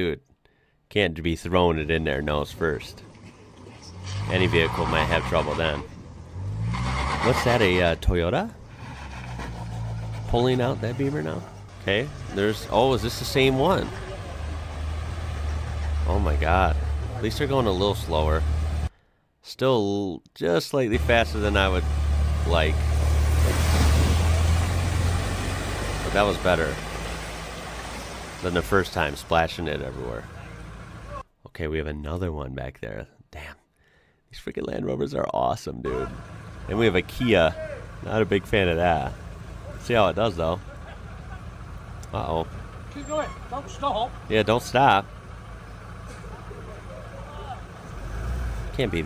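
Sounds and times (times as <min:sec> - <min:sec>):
truck engine running: 0:01.8 - 0:18.9, 0:21.0 - 0:31.2, 0:35.9 - 0:49.0
water rushing: 0:21.0 - 0:31.2.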